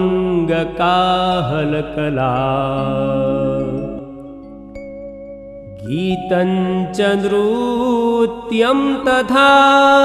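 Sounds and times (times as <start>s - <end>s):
man singing: 0.0s - 4.2s, 5.7s - 10.0s
devotional music: 0.0s - 10.0s.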